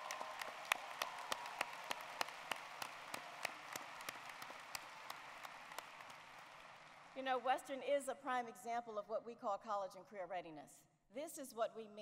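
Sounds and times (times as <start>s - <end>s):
sharp hand claps close by: 0.0s - 7.1s
crowd applause in a hall: 0.0s - 7.2s.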